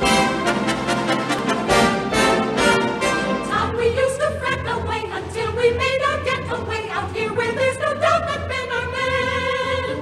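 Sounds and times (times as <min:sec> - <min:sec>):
orchestra playing show tune: 0:00.0 - 0:03.9.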